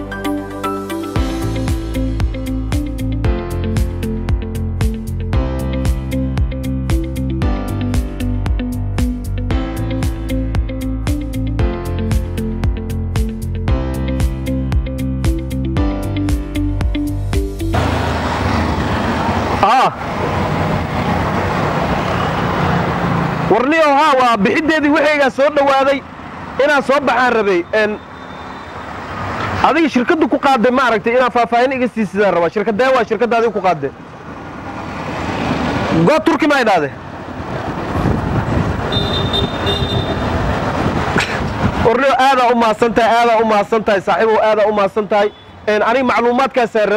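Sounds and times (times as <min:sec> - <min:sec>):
street traffic noise: 0:00.0 - 0:46.9
auto-rickshaw engines passing: 0:17.8 - 0:31.6, 0:32.7 - 0:43.2.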